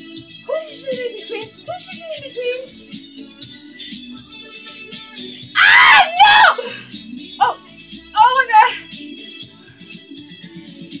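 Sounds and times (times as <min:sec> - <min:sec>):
faint pop music: 0:00.0 - 0:11.0
woman screaming: 0:05.6 - 0:07.6, 0:08.2 - 0:08.8.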